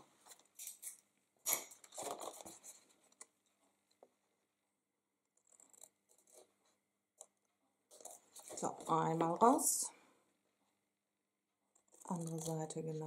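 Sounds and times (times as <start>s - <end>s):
card rustling: 7.9s - 9.6s.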